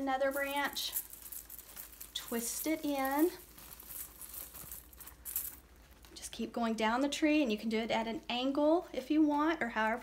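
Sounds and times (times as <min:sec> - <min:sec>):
ribbon and pine branches rustling: 0:00.0 - 0:06.8.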